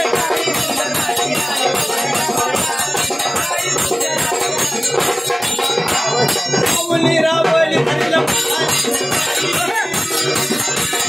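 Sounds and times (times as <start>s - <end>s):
fast percussion beat: 0.0s - 11.0s
person singing: 0.0s - 11.0s.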